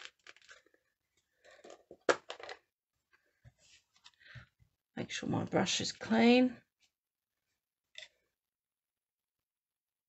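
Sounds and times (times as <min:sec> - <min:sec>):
handling craft supplies on desk: 0:00.0 - 0:04.8, 0:05.5 - 0:08.4.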